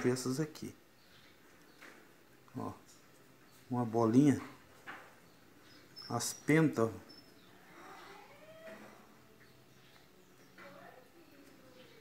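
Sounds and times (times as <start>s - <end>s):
faint animal calls: 7.1s - 9.2s.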